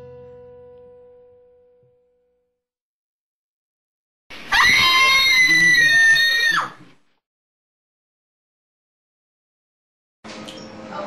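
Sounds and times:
loud high-pitched scream: 0:04.5 - 0:06.8.

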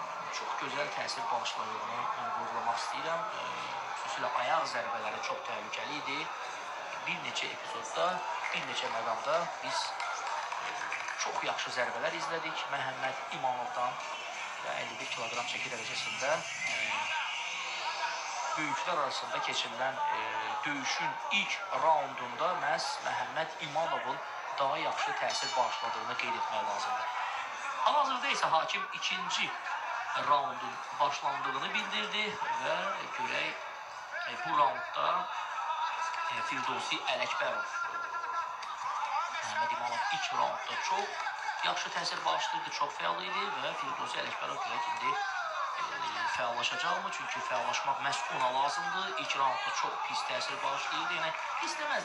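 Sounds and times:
man commentating: 0:00.0 - 0:52.0
tv broadcast background noise: 0:00.0 - 0:52.0.

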